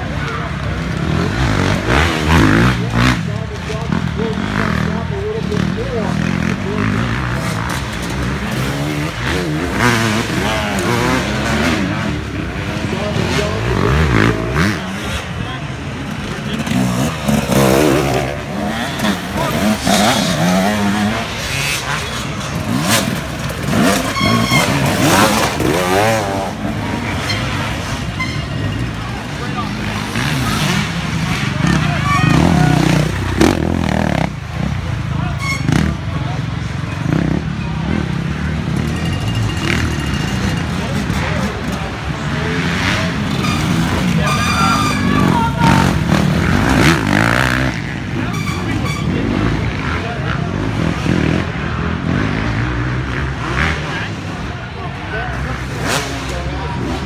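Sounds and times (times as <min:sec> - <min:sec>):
dirt bike engines revving: 0:00.0 - 0:57.0
spectators' voices: 0:00.0 - 0:57.0.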